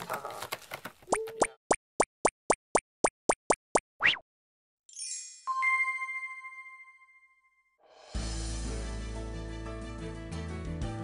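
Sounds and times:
cartoon plopping sounds: 1.0s - 4.2s.

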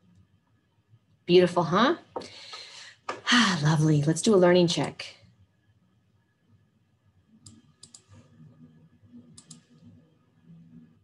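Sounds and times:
faint computer mouse clicks: 7.4s - 8.3s, 9.3s - 9.9s.

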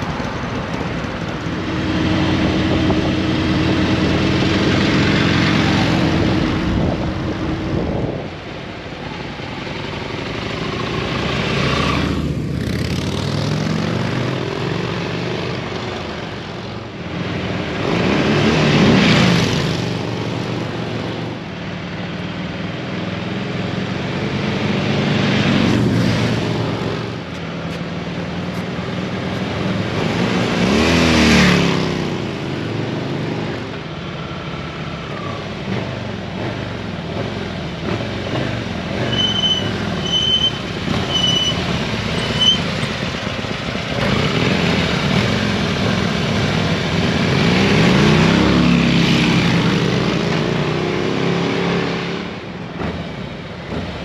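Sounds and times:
motorcycle engines riding: 0.0s - 54.0s.

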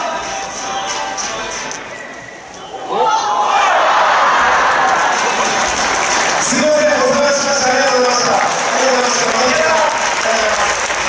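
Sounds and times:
crowd applauding: 3.9s - 11.0s.

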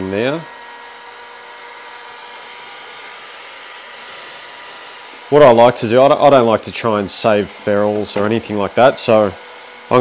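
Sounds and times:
heat gun blowing hiss: 0.0s - 10.0s.

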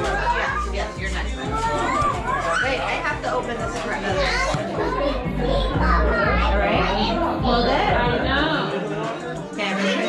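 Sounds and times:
music with pulsing bass beat: 0.0s - 8.5s
children chattering and calling out: 0.0s - 10.0s.

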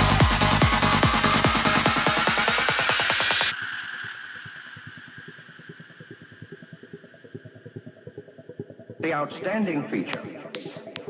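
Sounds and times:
pulsing synth bass: 0.0s - 11.0s.

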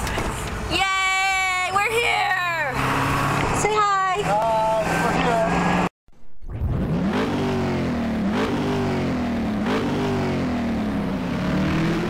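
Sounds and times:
truck engine drone: 2.4s - 12.0s.

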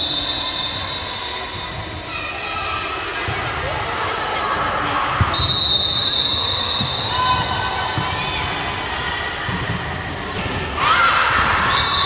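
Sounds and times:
referee's whistle blast: 5.3s - 7.4s.

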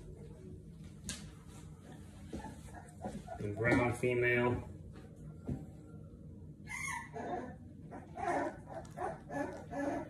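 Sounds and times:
puppy yelping and whining: 2.3s - 3.8s, 6.6s - 10.0s.

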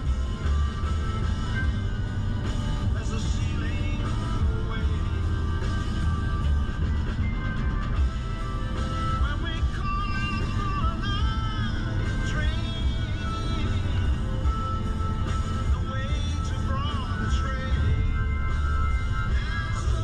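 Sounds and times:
car driving on highway: 0.0s - 20.0s
music with bending melody: 0.0s - 20.0s.

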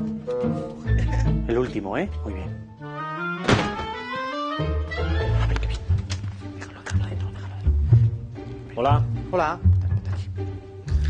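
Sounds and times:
background music with plucked bass: 0.0s - 2.6s
sharp thump: 3.4s - 4.0s.

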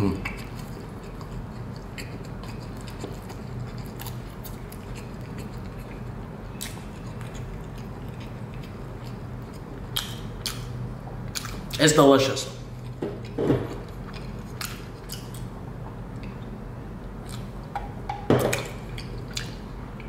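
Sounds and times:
person chewing food: 0.0s - 11.8s, 12.6s - 17.7s, 18.5s - 20.0s
steady low hum: 0.0s - 20.0s
wet mouth clicks: 9.9s - 10.7s.

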